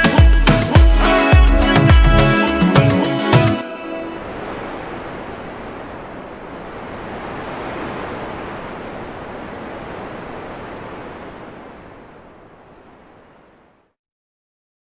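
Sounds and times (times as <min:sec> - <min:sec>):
ocean surf breaking on beach: 0:03.2 - 0:13.8.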